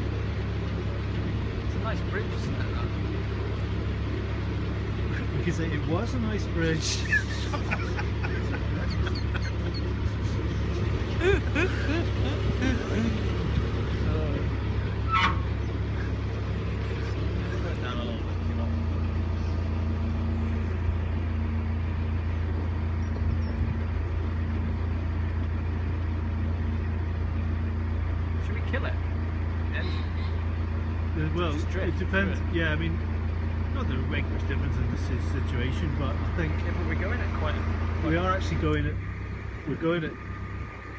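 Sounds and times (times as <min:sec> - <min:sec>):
diesel boat engine droning: 0:00.0 - 0:40.9.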